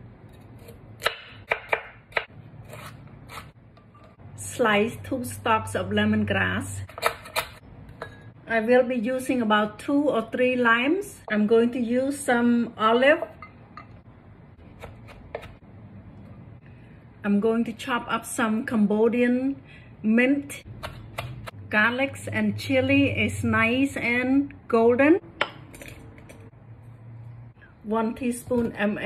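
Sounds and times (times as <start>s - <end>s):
knife chopping on wooden board: 0.6s - 3.4s.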